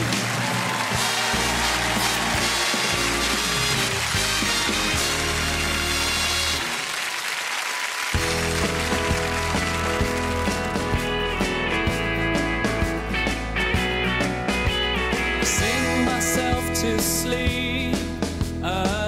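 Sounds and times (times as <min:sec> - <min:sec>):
rock band playing: 0:00.0 - 0:07.0, 0:08.1 - 0:19.0
audience applauding: 0:00.0 - 0:11.8
stage music: 0:00.0 - 0:19.0.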